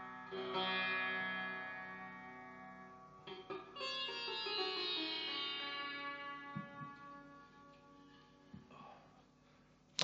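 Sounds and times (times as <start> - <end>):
sitar strings ringing: 0.0 - 8.6.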